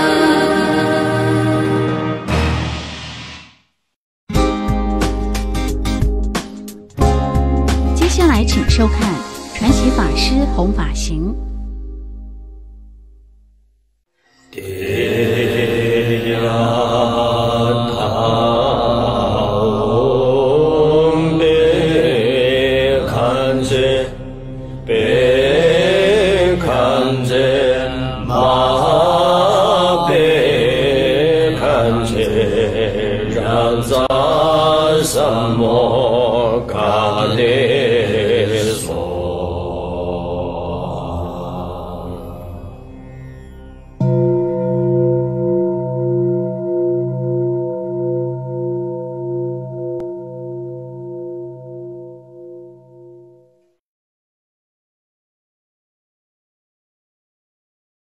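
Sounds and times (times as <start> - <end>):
voice chanting a mantra: 14.5 - 24.2, 24.9 - 42.7.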